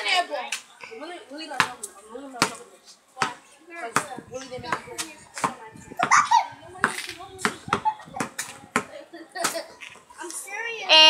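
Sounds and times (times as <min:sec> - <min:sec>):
basketball bouncing on concrete: 0:01.5 - 0:02.6, 0:03.2 - 0:09.6.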